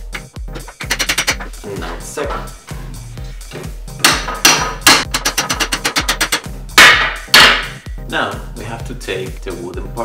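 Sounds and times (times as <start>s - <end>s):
electronic music: 0.0s - 8.0s
hammer tapping steel rod: 0.6s - 1.5s, 4.0s - 7.8s.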